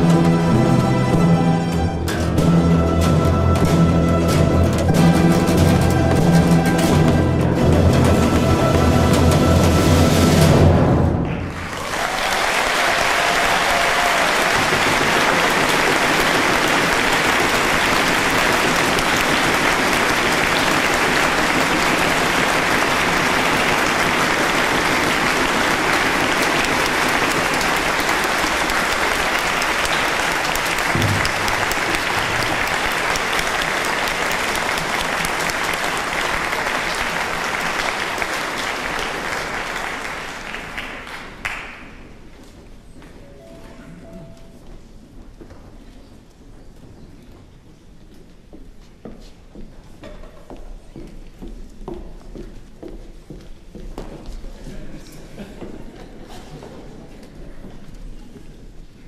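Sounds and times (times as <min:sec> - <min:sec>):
audience applauding: 0:11.2 - 0:42.2.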